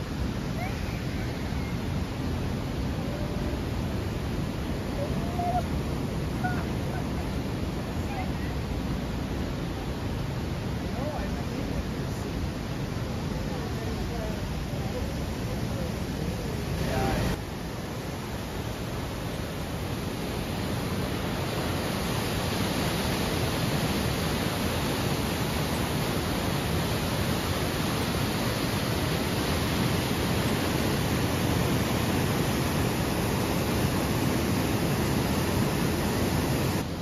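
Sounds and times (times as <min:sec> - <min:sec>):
water rushing over rocks: 0:00.0 - 0:37.0.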